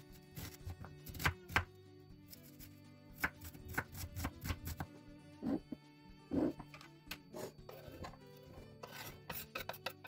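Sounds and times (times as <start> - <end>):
soft background music: 0.0 - 10.0
knife chopping on wooden board: 0.4 - 1.7, 3.2 - 5.7.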